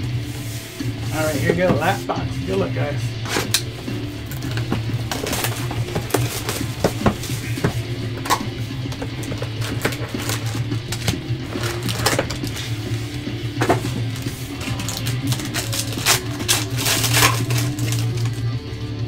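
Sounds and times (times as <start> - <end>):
background music: 0.0 - 19.0
foil packs crinkling: 3.7 - 18.5.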